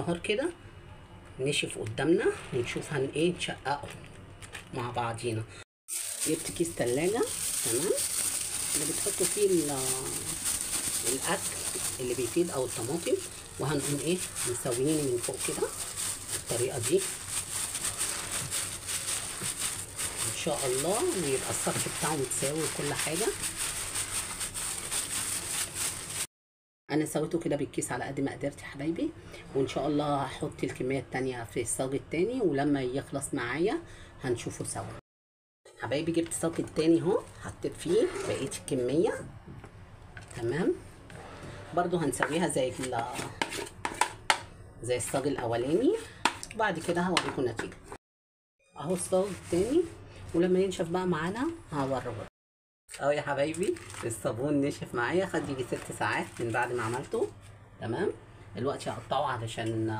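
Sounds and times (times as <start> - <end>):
plastic bag crinkling: 3.7 - 4.8, 5.9 - 26.3, 52.9 - 54.4, 55.4 - 57.3
wooden spoon scraping metal bowl: 8.8 - 23.5, 37.8 - 38.8, 41.1 - 44.4, 48.9 - 50.0.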